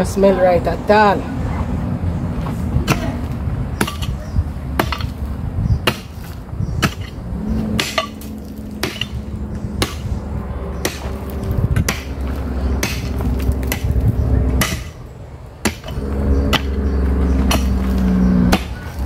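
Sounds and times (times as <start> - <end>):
pickaxe striking stony ground: 3.8 - 5.2, 5.9 - 7.2, 7.8 - 9.2, 9.8 - 10.1, 10.8 - 15.0, 15.6 - 16.8, 17.4 - 19.0.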